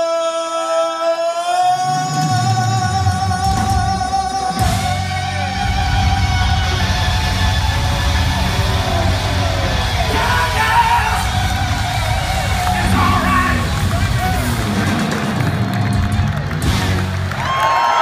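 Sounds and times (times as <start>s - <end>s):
man singing: 0.0s - 7.1s
live rock band playing: 3.0s - 17.7s.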